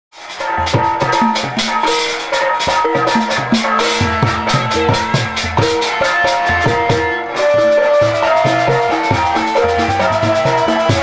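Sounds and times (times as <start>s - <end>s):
drums and percussion beat: 0.1s - 11.0s
melody of held notes: 0.5s - 11.0s.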